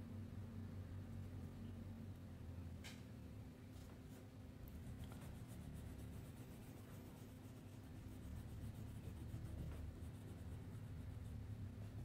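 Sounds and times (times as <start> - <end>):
crayon scribbling on paper: 4.7 - 11.6.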